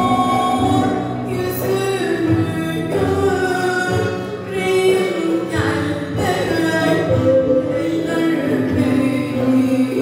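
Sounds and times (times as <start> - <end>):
folk instrument ensemble: 0.0 - 10.0.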